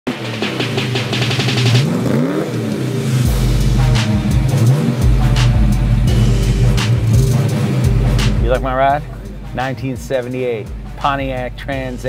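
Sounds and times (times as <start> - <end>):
car engine revving: 0.1 - 12.0
music with heavy beat: 0.1 - 12.0.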